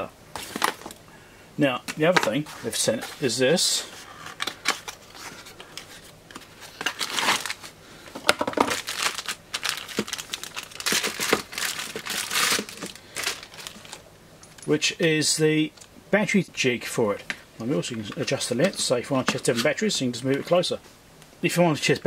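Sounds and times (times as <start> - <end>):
plastic bag crinkling: 4.3 - 14.6.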